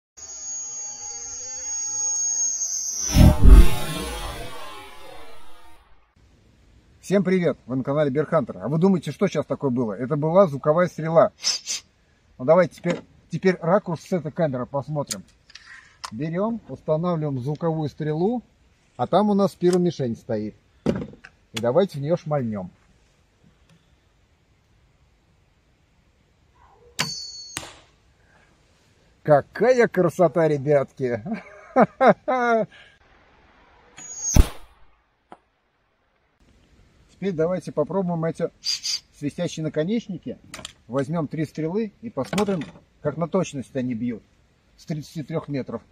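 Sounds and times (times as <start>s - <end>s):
shrill high-pitched whistle: 0.2s - 5.9s, 34.0s - 34.6s
arrow striking target: 3.1s - 6.0s, 27.0s - 27.9s, 34.0s - 35.4s
crossbow firing snap: 34.3s - 34.8s.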